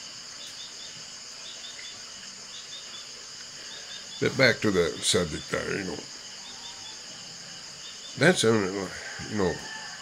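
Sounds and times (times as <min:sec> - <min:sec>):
insects trilling: 0:00.0 - 0:10.0
short insect chirps: 0:00.0 - 0:10.0.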